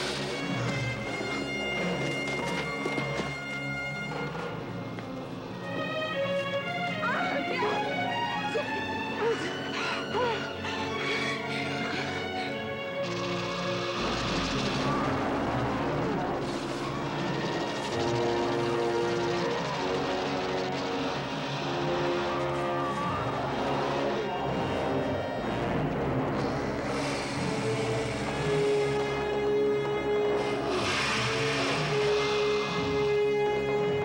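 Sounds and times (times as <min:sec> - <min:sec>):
film score with held tones: 0:00.0 - 0:34.0
rough noisy din: 0:12.8 - 0:34.0
rushing hiss: 0:26.5 - 0:29.4, 0:30.4 - 0:33.6.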